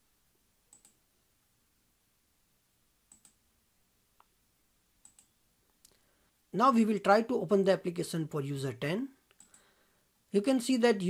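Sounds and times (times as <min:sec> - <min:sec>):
computer mouse clicks: 0:00.7 - 0:01.0, 0:03.1 - 0:03.4, 0:05.0 - 0:06.0, 0:09.3 - 0:09.7.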